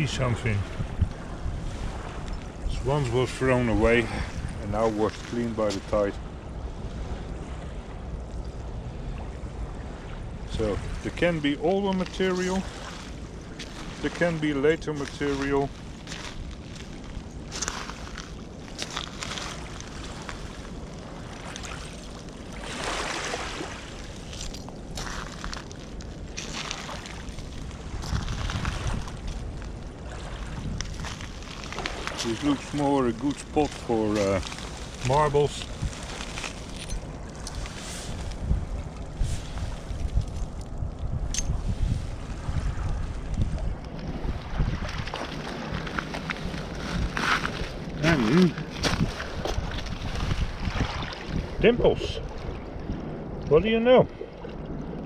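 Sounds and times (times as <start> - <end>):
small waves washing ashore: 0.0 - 55.0
wind rumbling on microphone: 0.0 - 55.0
footsteps crunching on shards: 14.9 - 22.4, 23.9 - 40.7, 44.8 - 50.4.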